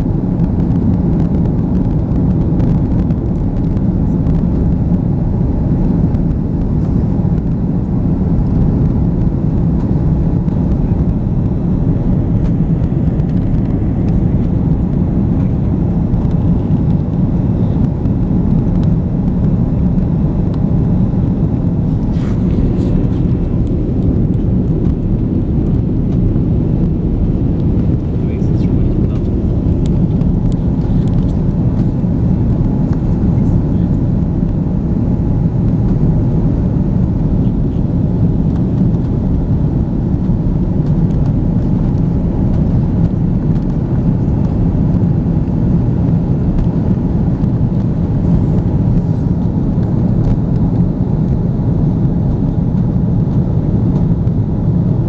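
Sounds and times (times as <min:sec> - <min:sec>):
airliner cabin rumble: 0:00.0 - 0:55.0.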